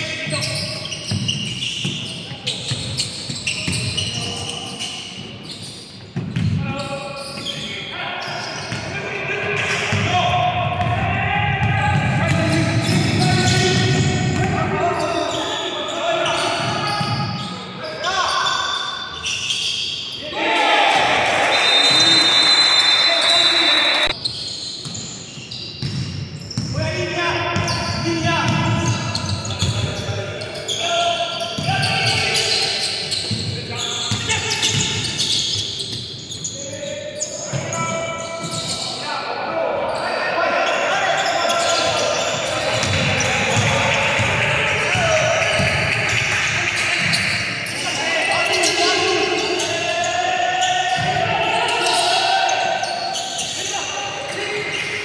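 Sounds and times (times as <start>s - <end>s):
basketball bouncing on wooden court: 6.2s - 6.6s, 25.8s - 26.8s, 27.6s - 30.0s, 42.7s - 46.3s
players calling out: 6.6s - 24.5s, 26.7s - 55.0s.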